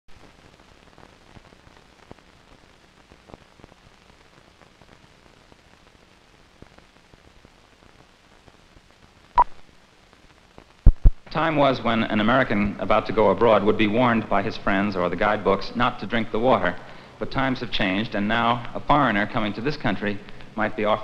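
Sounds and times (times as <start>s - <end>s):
film soundtrack hiss and crackle: 0.1s - 21.0s.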